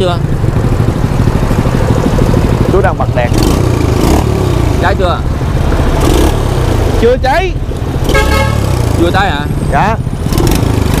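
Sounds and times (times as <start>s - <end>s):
small engine idling: 0.0s - 4.0s.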